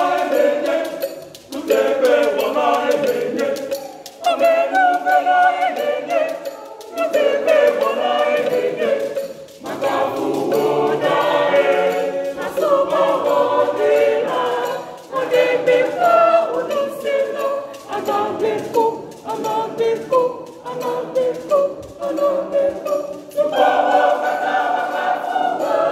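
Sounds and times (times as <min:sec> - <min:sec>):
choir singing a cappella: 0:00.0 - 0:25.9.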